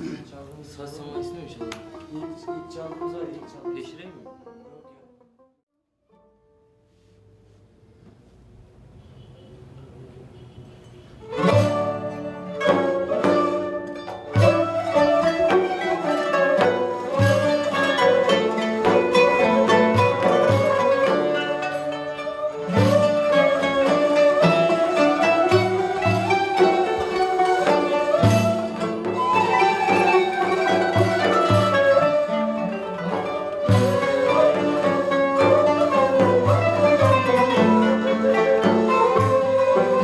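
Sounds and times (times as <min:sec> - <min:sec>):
bowed strings: 0:00.0 - 0:05.4, 0:11.2 - 0:40.0
oud plucked: 0:00.0 - 0:05.5, 0:11.2 - 0:40.0
ney flute: 0:11.2 - 0:40.0.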